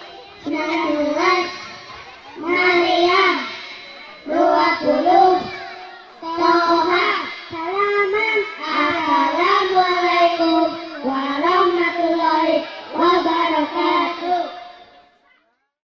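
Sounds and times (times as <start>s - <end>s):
boys chanting in unison: 0.0s - 15.2s.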